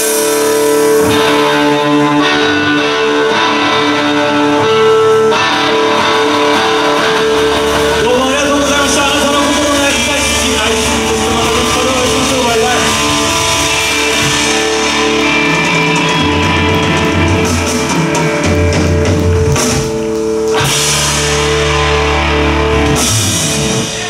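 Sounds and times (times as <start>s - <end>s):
distorted electric guitars: 0.0s - 24.0s
drum kit: 0.0s - 24.0s
electric bass line: 0.0s - 24.0s.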